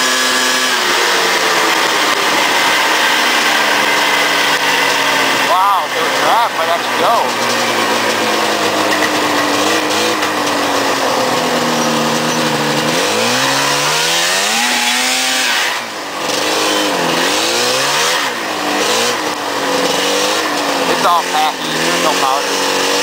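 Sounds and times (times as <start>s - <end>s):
snowmobile engine revving: 0.0s - 23.0s.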